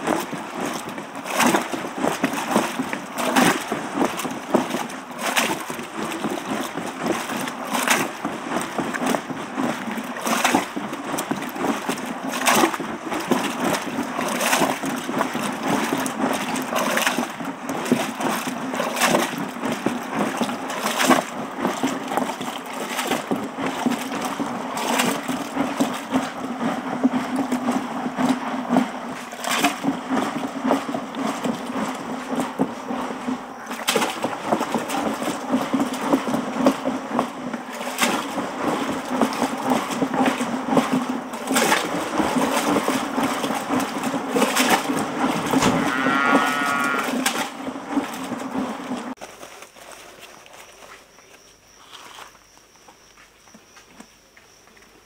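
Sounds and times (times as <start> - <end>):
milk sloshing in churn: 0.0 - 52.4.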